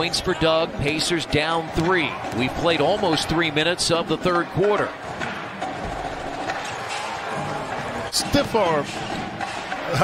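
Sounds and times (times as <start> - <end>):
basketball game crowd noise: 0.0 - 10.0.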